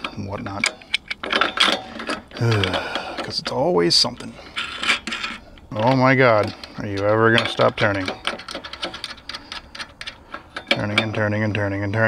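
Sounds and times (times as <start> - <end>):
nut clinking on bolt: 0.0 - 3.6, 4.6 - 12.0
person sighing: 2.4 - 3.2.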